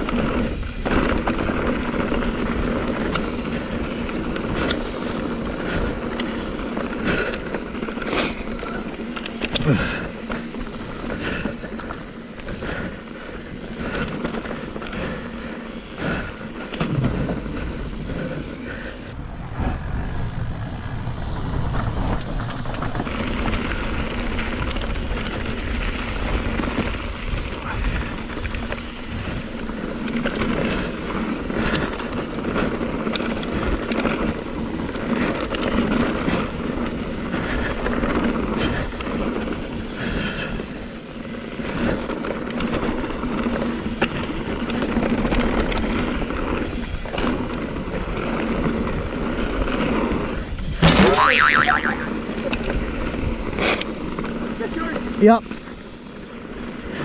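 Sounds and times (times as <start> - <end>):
bike rattling and knocking: 0.0 - 19.1, 21.6 - 51.6
wind on microphone: 19.1 - 29.9
tyre noise: 49.9 - 52.2.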